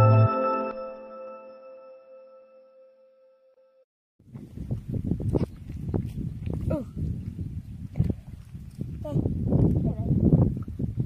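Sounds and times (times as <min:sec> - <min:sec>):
wind rumbling on microphone: 0:04.2 - 0:11.0.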